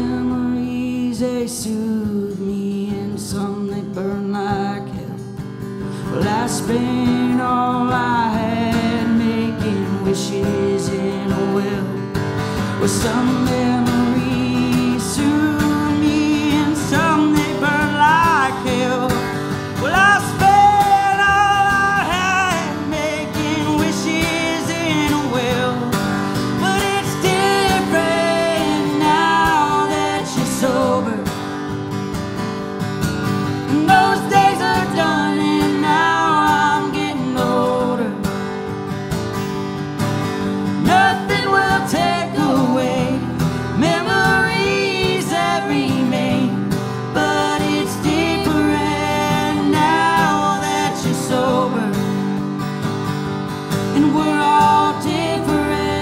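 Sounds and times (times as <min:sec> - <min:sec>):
man singing: 0:00.0 - 0:31.5, 0:33.6 - 0:38.3, 0:40.8 - 0:52.3, 0:53.9 - 0:56.0
acoustic guitar strummed: 0:00.0 - 0:56.0
woman singing harmony: 0:26.6 - 0:31.3, 0:33.7 - 0:38.3, 0:40.8 - 0:52.0, 0:54.0 - 0:56.0.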